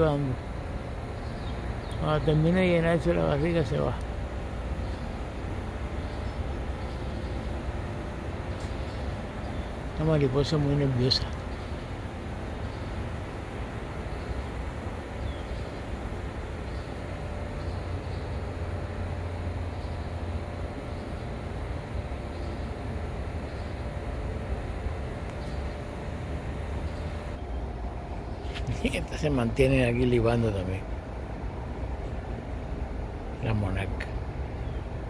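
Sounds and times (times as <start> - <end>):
low rumble of outdoor background noise: 0.0 - 35.0.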